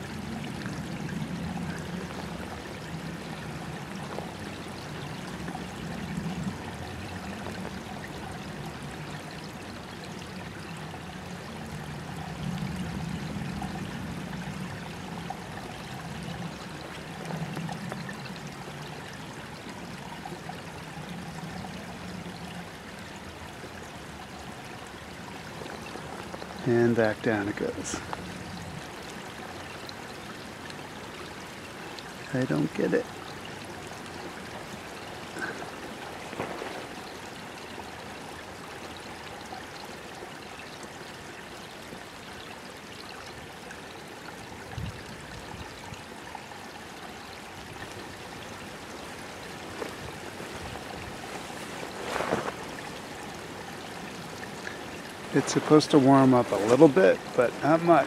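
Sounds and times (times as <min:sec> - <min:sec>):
creek water trickling: 0:00.0 - 0:58.0.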